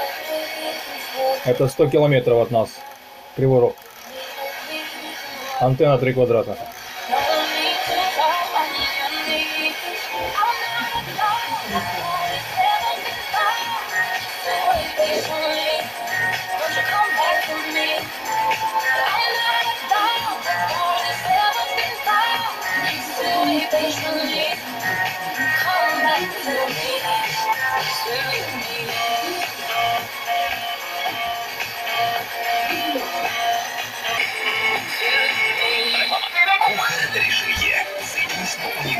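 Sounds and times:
music with singing on radio: 0.0 - 38.9.

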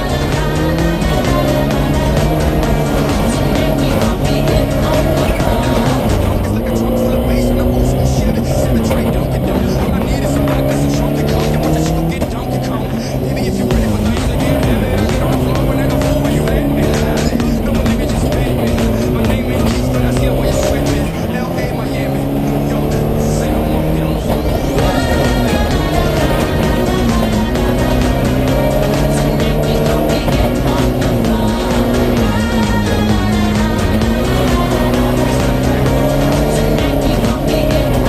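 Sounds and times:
music track: 0.0 - 38.0
race car engine revving: 0.0 - 38.0.

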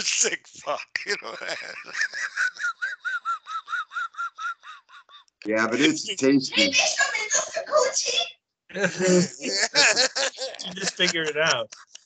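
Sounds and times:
high-pitched squeaky laugh: 0.0 - 6.0, 8.8 - 12.0.

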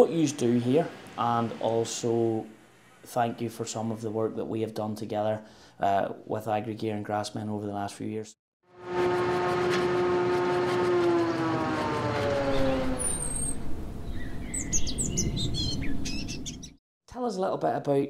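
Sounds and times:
hum gliding down in pitch: 8.8 - 15.2
rumbling drone: 8.8 - 16.0
high bird chirps: 12.5 - 16.8.

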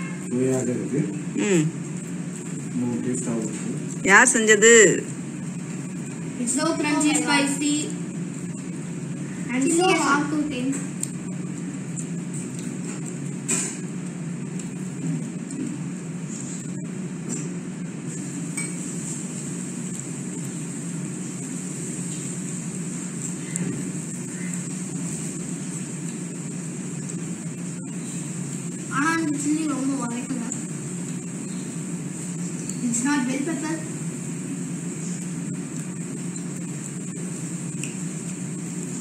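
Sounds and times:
low background hum: 0.0 - 39.0.

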